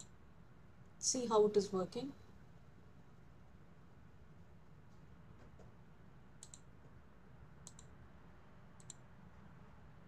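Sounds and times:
low steady hum: 0:00.0 - 0:10.0
computer mouse double clicks: 0:06.4 - 0:06.7, 0:07.6 - 0:07.9.

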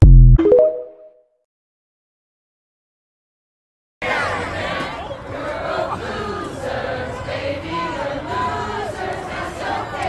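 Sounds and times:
crowd singing together: 0:04.0 - 0:10.0.

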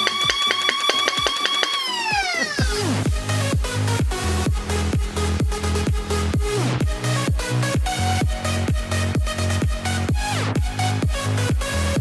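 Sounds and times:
flywheel motors whining: 0:00.0 - 0:02.8
electronic music beat: 0:00.0 - 0:12.0.

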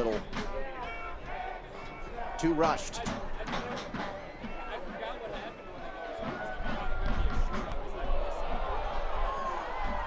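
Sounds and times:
music: 0:00.0 - 0:10.0
stadium crowd noise: 0:00.0 - 0:10.0.

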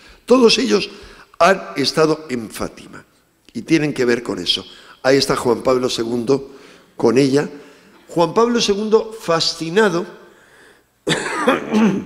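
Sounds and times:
man coughing: 0:11.0 - 0:12.0.

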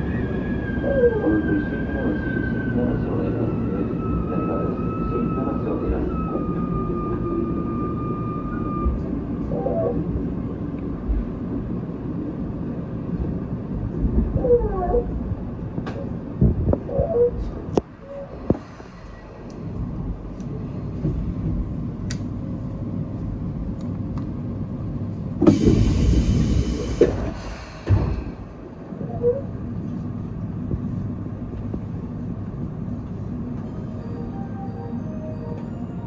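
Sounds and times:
train running gear rumble: 0:00.0 - 0:36.0.

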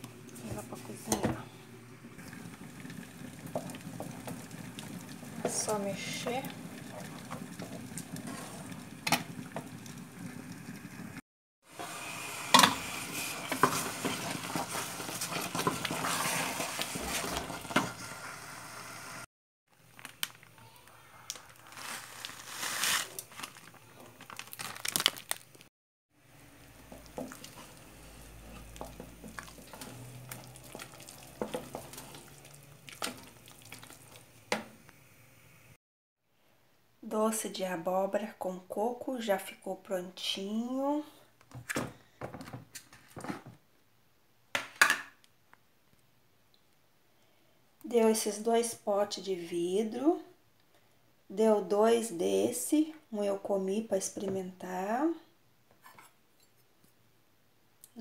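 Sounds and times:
spoon stirring thick jam: 0:26.6 - 0:34.2
thick jam bubbling and popping: 0:26.6 - 0:34.4.

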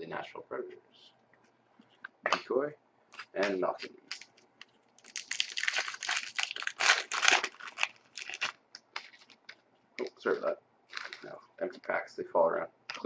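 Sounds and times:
foil wrappers crinkling: 0:03.2 - 0:03.4, 0:04.1 - 0:04.4, 0:05.0 - 0:09.6, 0:10.9 - 0:11.3.

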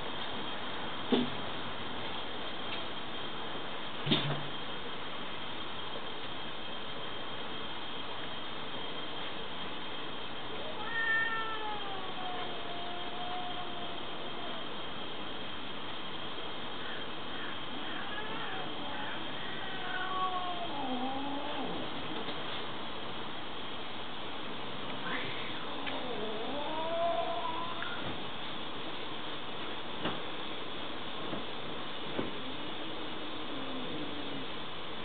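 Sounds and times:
steady background hiss: 0:00.0 - 0:35.0
cat meowing: 0:10.6 - 0:14.6, 0:17.4 - 0:21.8, 0:25.0 - 0:28.0.

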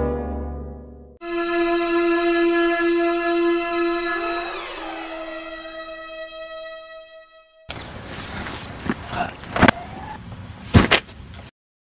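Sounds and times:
outdoor background noise: 0:07.7 - 0:11.5.

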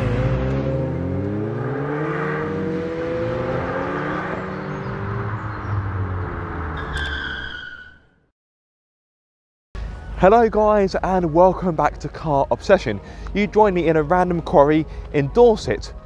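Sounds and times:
car engine revving: 0:00.0 - 0:07.0
high squeal: 0:06.8 - 0:08.2.

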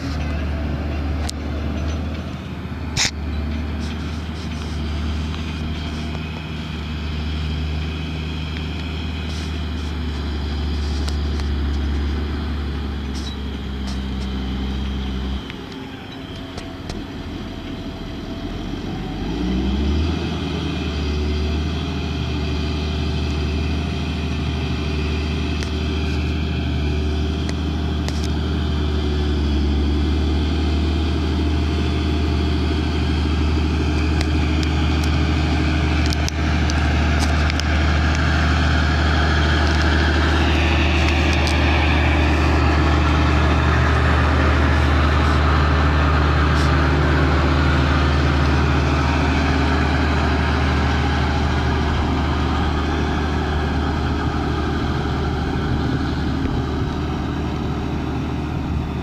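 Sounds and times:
tractor diesel engine under load: 0:00.0 - 0:59.0.

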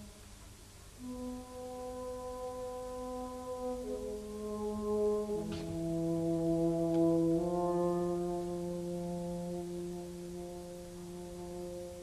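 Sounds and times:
french horn slow melody: 0:00.0 - 0:12.0.

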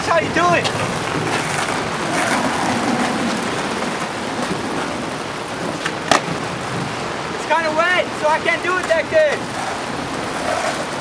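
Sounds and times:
rain hissing on pavement: 0:00.0 - 0:11.0
skateboard rolling on wet asphalt: 0:00.0 - 0:11.0.

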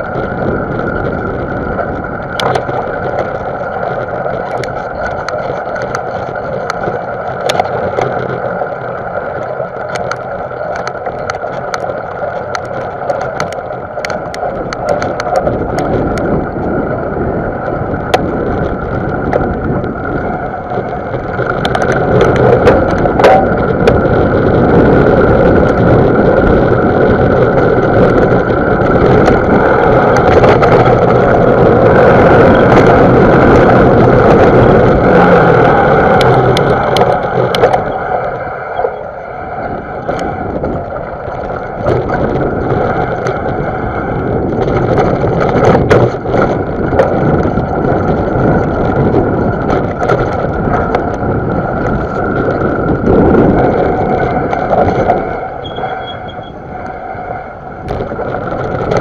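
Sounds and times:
bike rattles and clicks: 0:00.0 - 0:59.0
bike tyre and wind noise: 0:00.0 - 0:59.0.

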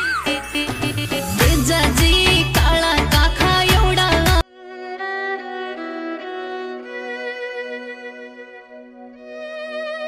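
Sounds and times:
violins playing slow melody: 0:04.5 - 0:10.0.

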